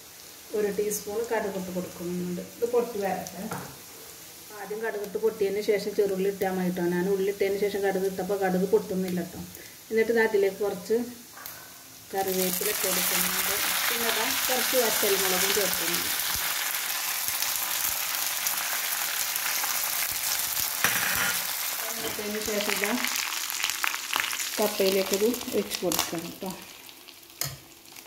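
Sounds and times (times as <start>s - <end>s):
hot oil sizzling: 0.0s - 28.0s.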